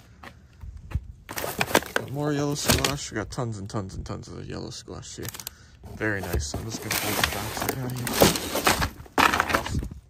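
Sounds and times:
cardboard box handled: 1.3 - 2.9, 5.3 - 9.9
plastic wrap crinkling: 5.2 - 9.8.

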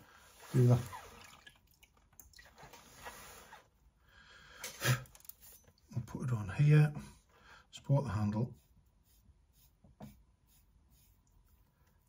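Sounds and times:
sponge rubbing over mug: 0.1 - 1.3, 2.8 - 3.7, 8.2 - 12.0.

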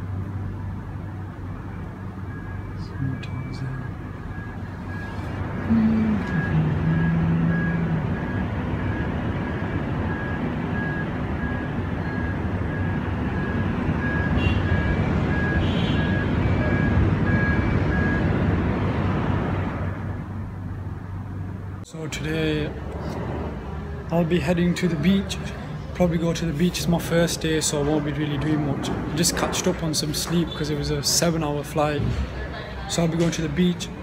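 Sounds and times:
city traffic noise: 0.0 - 34.0
faint high beep: 1.7 - 9.1.

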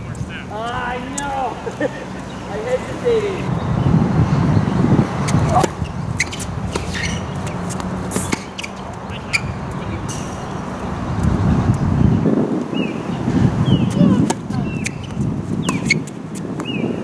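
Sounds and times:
tennis ball bouncing: 0.6 - 3.2, 5.2 - 11.8, 13.8 - 17.0
racket hitting tennis ball: 5.2 - 10.9, 13.8 - 17.0.

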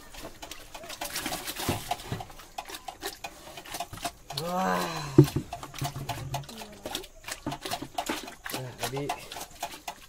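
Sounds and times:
pig chewing wet feed: 0.0 - 10.0.

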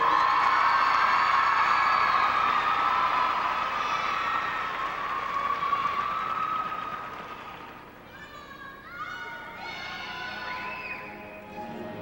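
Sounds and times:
audience applauding and cheering: 0.0 - 7.9.

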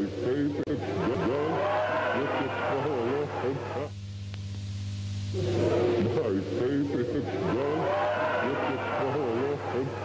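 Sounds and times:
steady low hum: 0.0 - 10.0
voices laughing and crying out: 0.7 - 3.9, 5.8 - 10.0.

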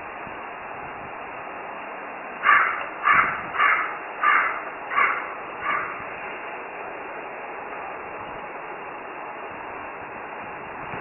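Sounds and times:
animal calling: 2.4 - 6.1.

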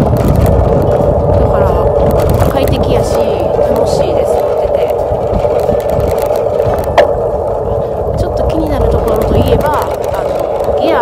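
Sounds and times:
road noise: 0.0 - 11.0
wind rush: 0.0 - 11.0
woman talking: 1.3 - 5.1, 8.2 - 11.0.

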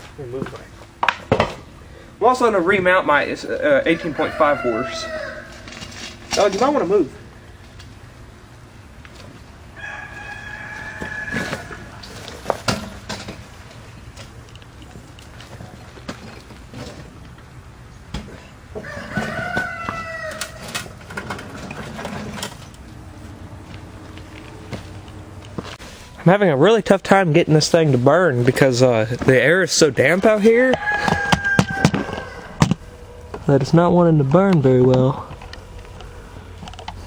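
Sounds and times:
knocks of metal and bricks: 1.0 - 1.6
rooster crowing: 3.7 - 5.8, 9.7 - 12.3, 18.7 - 21.0, 30.7 - 33.4.

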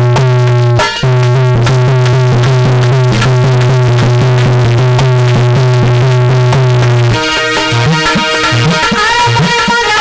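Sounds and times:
quick repeated notes: 0.0 - 10.0
low drone: 1.3 - 7.8.

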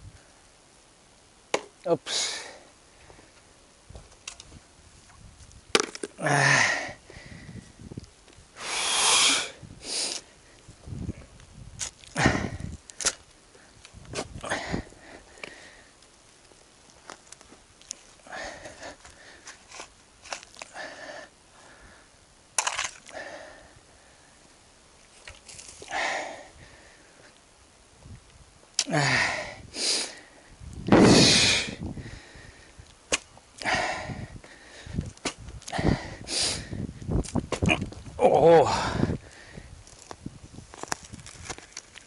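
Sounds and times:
person breathing and huffing: 6.2 - 7.8, 12.2 - 12.8, 14.4 - 16.0, 18.2 - 19.6, 28.9 - 32.8, 33.6 - 35.1, 35.7 - 37.0, 38.6 - 39.8.

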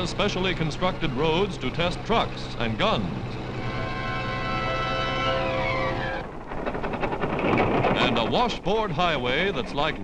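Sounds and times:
rough noise: 0.0 - 10.0
truck engine droning: 0.0 - 10.0.

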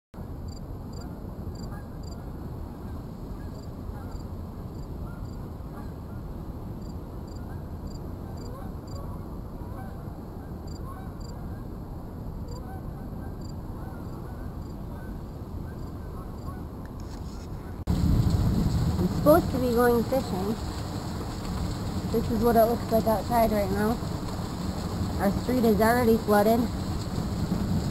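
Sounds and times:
low rumble: 17.7 - 27.9.

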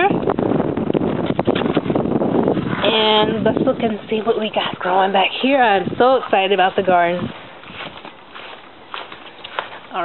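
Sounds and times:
woman speaking: 0.0 - 0.2, 2.8 - 7.3
footsteps: 1.2 - 10.0.

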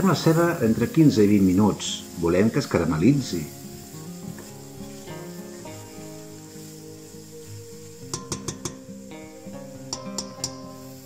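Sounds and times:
background music with sustained notes: 0.0 - 11.0.

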